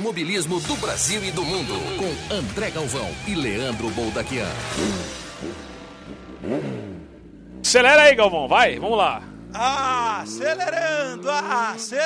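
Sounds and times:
jingle music: 0:00.1 - 0:06.0
car engine revving effect: 0:00.6 - 0:11.6.

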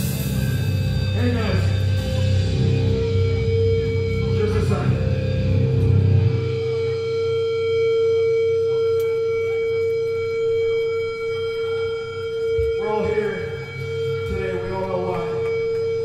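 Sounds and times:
guitar amplifier feedback tone: 0:00.0 - 0:16.0
voices: 0:06.0 - 0:16.0.

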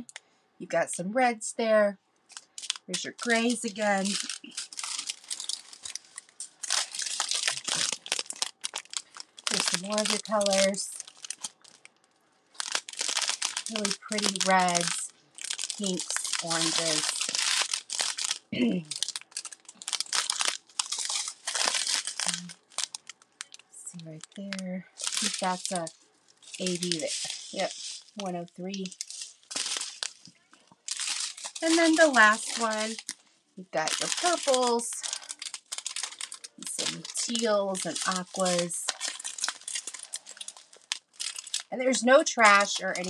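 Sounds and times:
plastic bags crinkling: 0:02.3 - 0:43.0.

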